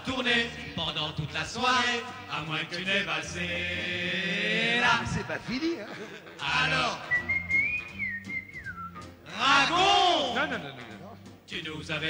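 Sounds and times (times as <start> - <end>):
soft musical accompaniment: 0.0 - 12.0
person whistling melody: 7.0 - 9.2.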